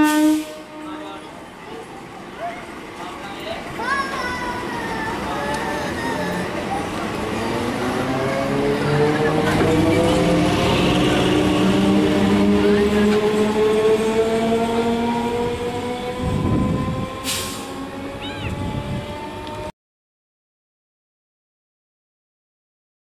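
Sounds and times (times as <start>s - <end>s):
wheels rumbling on rails: 0.0s - 19.7s
train motors whining: 4.5s - 19.7s.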